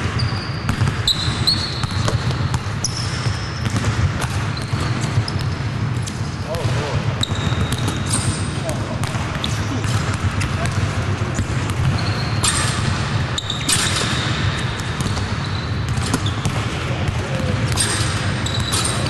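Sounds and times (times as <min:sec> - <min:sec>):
shoe squeaks: 0:00.0 - 0:03.7, 0:04.4 - 0:06.6, 0:07.2 - 0:08.8, 0:11.8 - 0:16.5, 0:17.7 - 0:19.0
basketballs bouncing on court: 0:00.0 - 0:19.0
players' voices: 0:06.4 - 0:07.2, 0:08.5 - 0:11.2, 0:16.8 - 0:17.7.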